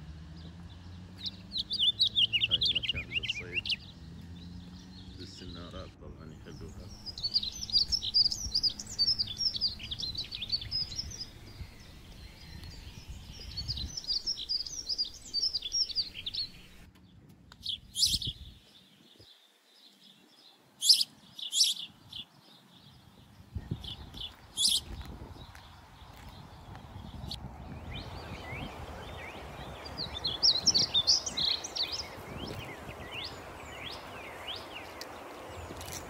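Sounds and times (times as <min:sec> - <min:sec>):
small birds twittering: 0:00.0 - 0:36.0
loud high bird calls: 0:01.1 - 0:16.9, 0:17.6 - 0:18.5, 0:20.8 - 0:22.4, 0:23.6 - 0:36.0.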